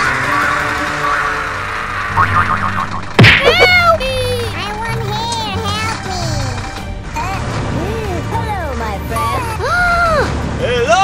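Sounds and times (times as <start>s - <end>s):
background music: 0.0s - 11.0s
springy boing gliding in pitch: 2.0s - 3.6s
cartoon whack: 2.1s - 3.9s.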